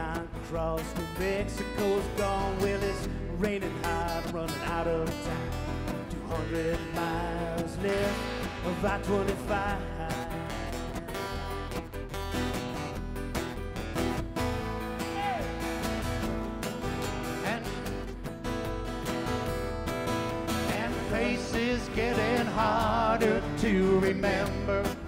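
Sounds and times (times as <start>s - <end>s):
person singing: 0.0s - 11.5s, 17.3s - 18.0s, 20.6s - 25.0s
country band playing: 0.0s - 25.0s
strummed acoustic guitars: 0.0s - 25.0s
upright bass: 0.0s - 25.0s.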